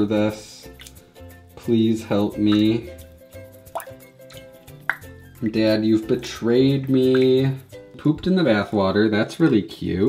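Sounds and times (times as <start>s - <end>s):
soft background music: 0.0s - 10.0s
small water plops: 0.7s - 1.0s, 2.2s - 5.6s, 6.7s - 7.8s.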